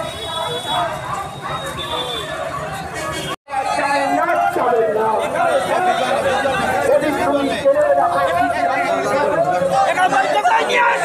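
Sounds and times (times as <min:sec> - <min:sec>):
babble of many voices: 0:00.0 - 0:11.0.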